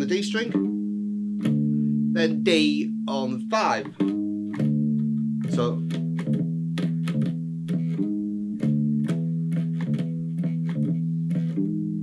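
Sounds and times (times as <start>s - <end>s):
electric bass guitar line: 0.0s - 12.0s.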